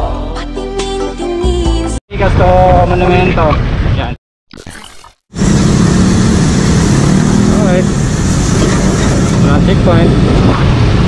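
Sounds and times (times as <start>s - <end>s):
road noise: 5.3s - 11.0s.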